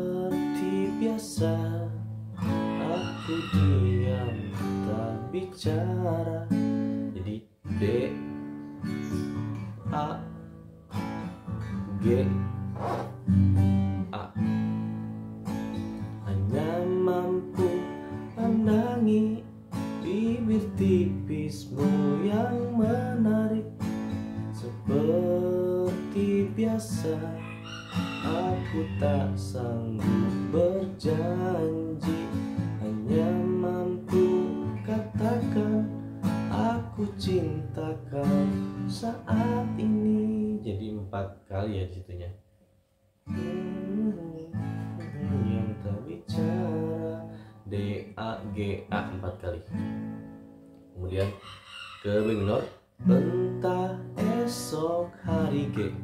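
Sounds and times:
acoustic guitar strumming chords: 0.0s - 40.8s, 43.2s - 51.3s, 53.0s - 56.0s.

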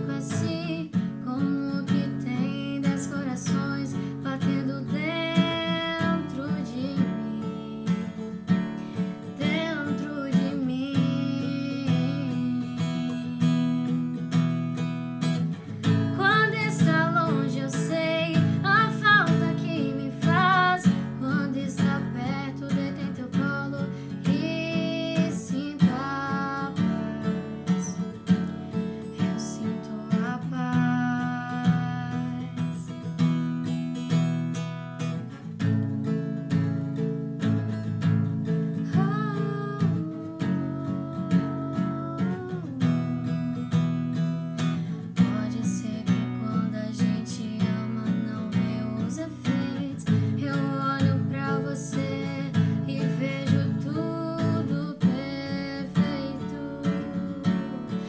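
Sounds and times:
woman singing a ballad: 0.0s - 33.8s, 37.9s - 58.0s
acoustic guitar strumming: 0.0s - 58.0s.

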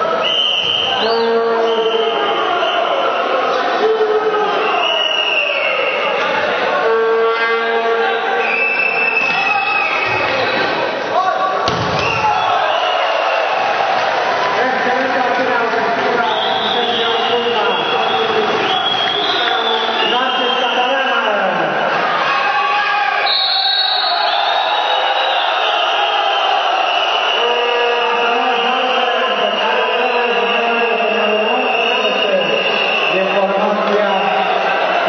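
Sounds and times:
crowd cheering and chanting: 0.0s - 35.0s
raised voices in a hall: 0.0s - 35.0s
long high whistle tone: 0.2s - 3.2s, 4.6s - 6.2s, 8.0s - 10.2s, 23.2s - 34.4s
ball struck sharply: 11.6s - 12.2s.

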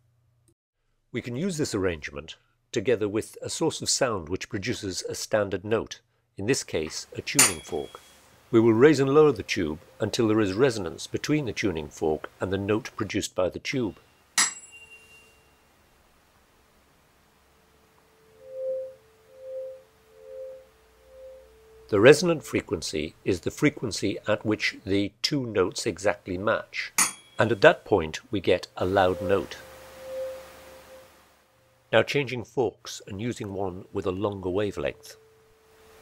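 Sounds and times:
tuning fork humming: 7.2s - 11.8s, 13.9s - 16.1s, 17.1s - 23.2s, 27.0s - 27.6s, 28.8s - 31.9s, 33.7s - 36.0s
tuning fork strike: 7.3s - 10.9s, 14.3s - 15.7s, 17.9s - 22.8s, 28.8s - 31.8s.

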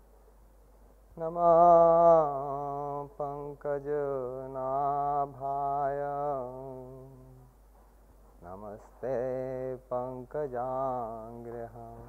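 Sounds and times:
man chanting into a microphone: 1.2s - 7.5s, 8.4s - 12.0s.

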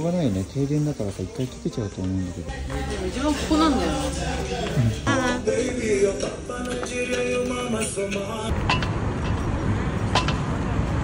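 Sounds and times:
road traffic rumble: 2.4s - 11.0s.

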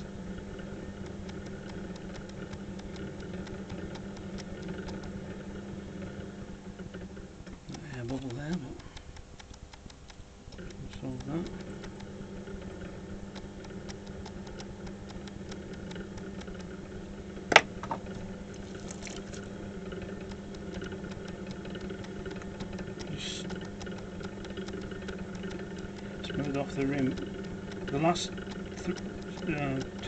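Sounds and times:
potter's wheel motor hum: 0.0s - 30.0s.

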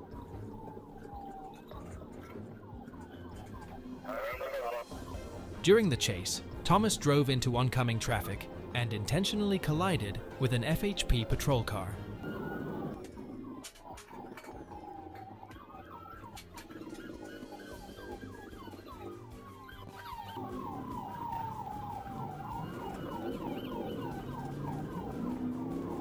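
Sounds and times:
police siren wailing and yelping: 0.0s - 6.3s, 10.7s - 26.0s.

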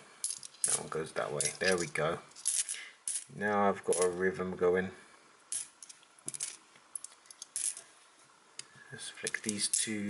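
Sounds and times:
coins clinking: 0.2s - 3.3s, 3.9s - 4.2s, 5.5s - 7.9s.

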